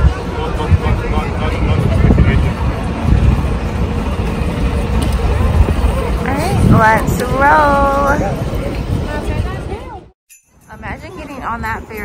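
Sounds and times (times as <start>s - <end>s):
bus engine rumbling: 0.0s - 10.2s
passers-by talking: 0.0s - 12.0s
street traffic: 0.0s - 12.0s.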